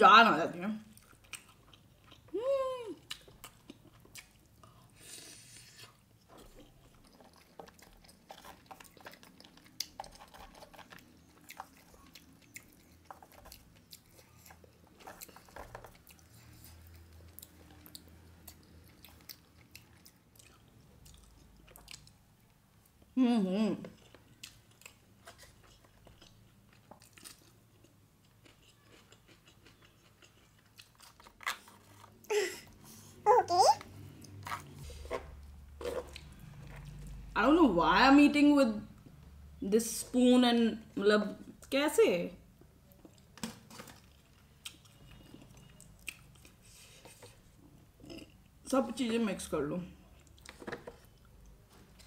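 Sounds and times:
faint chewing: 0.8s - 23.2s, 23.8s - 37.4s, 42.6s - 48.6s.

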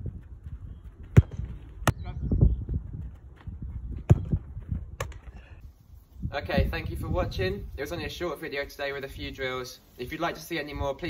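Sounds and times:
wind buffeting microphone: 0.0s - 8.4s
football thumps: 1.0s - 2.0s, 3.1s - 5.4s.

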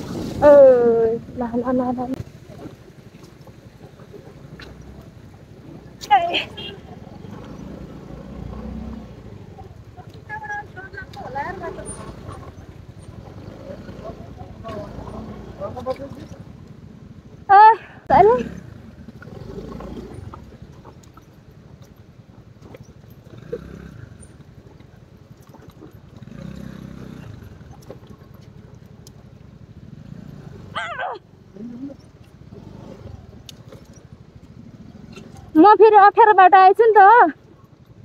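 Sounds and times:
scooter engine running low: 9.1s - 38.0s.

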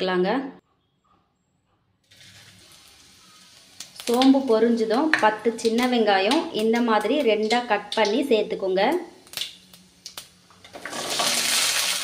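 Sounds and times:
seeds sizzling in hot oil: 2.1s - 12.0s.

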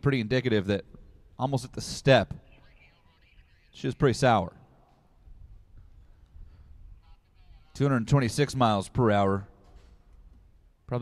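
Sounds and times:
man talking: 0.0s - 4.6s, 7.4s - 9.5s.

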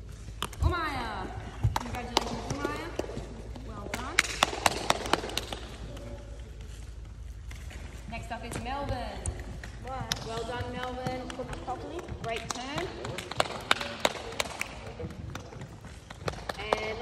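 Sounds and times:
sharp hand claps: 3.9s - 6.1s, 10.8s - 17.0s.

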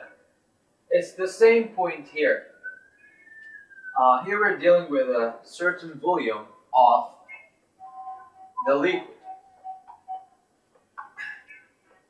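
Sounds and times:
whiteboard marker squeaking: 7.3s - 12.0s.

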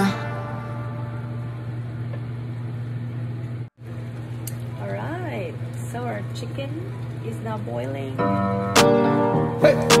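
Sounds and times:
induction cooktop humming: 0.0s - 8.7s.

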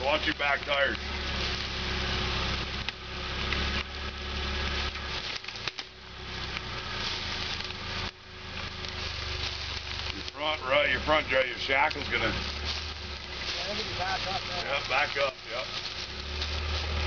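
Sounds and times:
car engine at low revs: 0.0s - 17.0s
leaves and twigs crackling under tyres: 0.0s - 17.0s.

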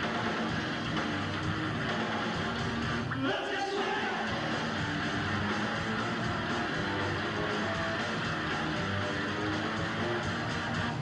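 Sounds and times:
bass guitar low notes: 0.0s - 3.1s, 4.3s - 11.0s
distorted electric guitar: 0.0s - 11.0s
drums: 0.0s - 11.0s.

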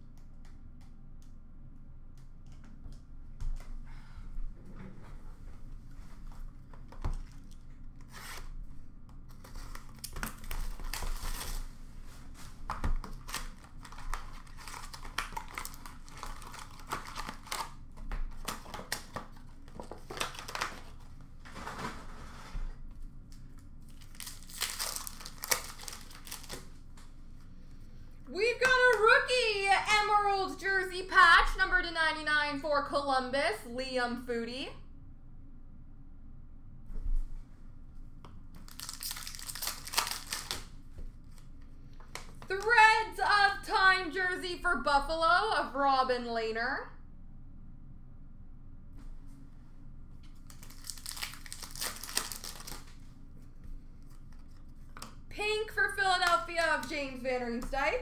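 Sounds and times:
wrappers tearing and crinkling: 9.3s - 22.0s, 23.4s - 26.9s, 38.6s - 41.5s, 50.3s - 53.1s
person speaking: 28.3s - 34.8s, 42.5s - 46.9s, 55.3s - 58.0s.

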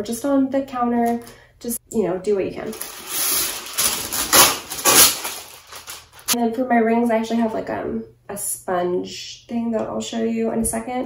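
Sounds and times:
wax paper rustling: 2.6s - 6.4s
paper rasps: 2.7s - 6.4s.

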